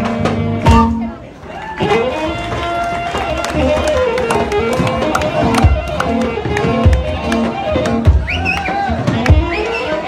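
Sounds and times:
drums: 0.0 - 1.2, 2.0 - 10.0
hand clapping: 2.2 - 9.4.

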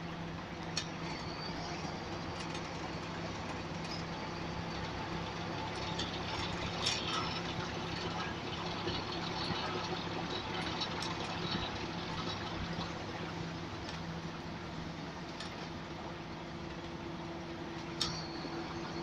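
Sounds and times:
bus engine humming: 0.0 - 19.0
bodywork rattles and clicks: 0.6 - 14.4.

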